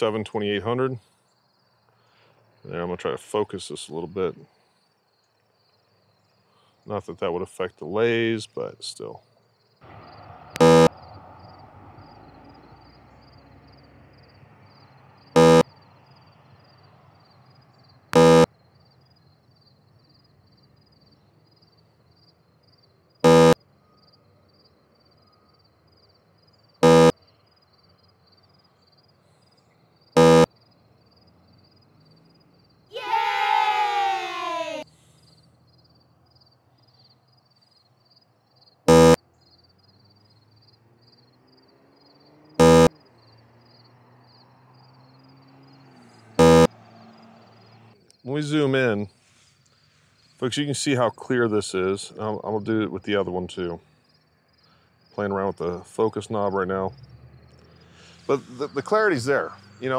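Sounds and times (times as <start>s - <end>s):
short loud electronic beeps: 10.6s - 11.0s, 15.4s - 15.7s, 18.1s - 18.5s, 23.2s - 23.6s, 26.8s - 27.2s, 30.2s - 30.5s, 38.9s - 39.2s, 42.6s - 42.9s, 46.4s - 46.7s
faint pulsing high tone: 18.2s - 18.5s, 23.2s - 23.6s, 26.8s - 27.1s, 30.2s - 30.5s, 42.6s - 42.9s
call sliding down in pitch: 32.9s - 34.8s.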